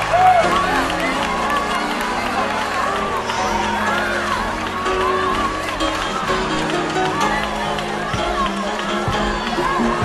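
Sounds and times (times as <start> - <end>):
congregation crowd noise: 0.0 - 10.0
voices shouting and wailing: 0.0 - 10.0.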